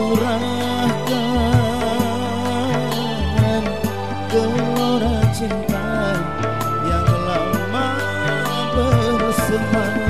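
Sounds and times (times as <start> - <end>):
bass line: 0.0 - 10.0
keyboard chords: 0.0 - 10.0
sliding melody line: 0.0 - 10.0.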